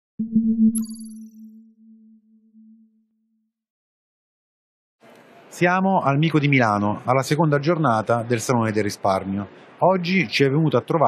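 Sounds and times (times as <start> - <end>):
low synthesized tone: 0.2 - 3.5.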